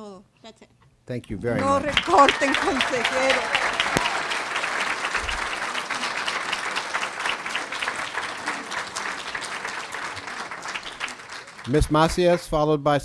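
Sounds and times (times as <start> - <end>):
audience applauding: 1.6 - 12.6.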